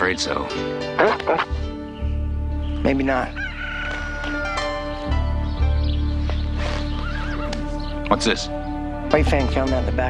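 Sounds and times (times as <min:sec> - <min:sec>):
background music with sustained tones: 0:00.0 - 0:10.0
horse neighing: 0:07.0 - 0:07.7.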